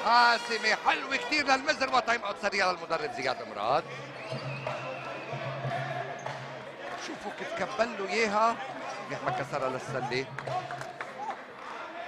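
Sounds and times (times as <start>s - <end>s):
faint crowd noise: 0.0s - 12.0s.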